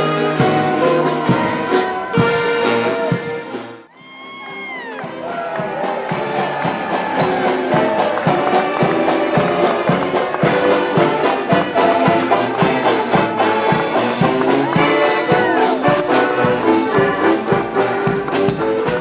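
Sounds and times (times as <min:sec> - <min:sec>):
saxophones: 0:05.0 - 0:19.0
steady drum beat: 0:05.1 - 0:19.0
accordion: 0:07.4 - 0:19.0.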